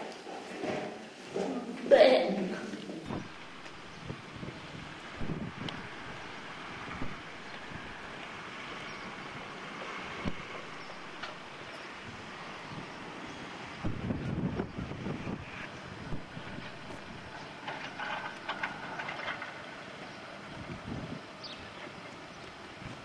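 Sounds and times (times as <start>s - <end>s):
wind buffeting microphone: 3.0s - 23.0s.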